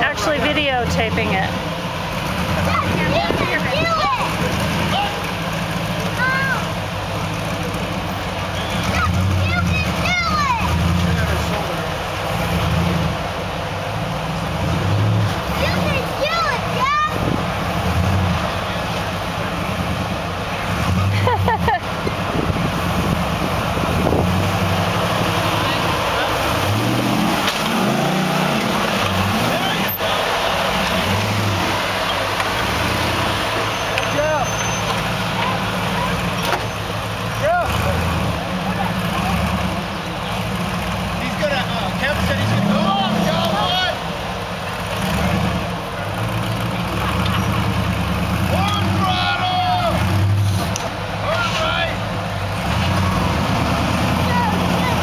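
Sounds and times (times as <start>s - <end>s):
buggy engine revving: 0.0s - 55.0s.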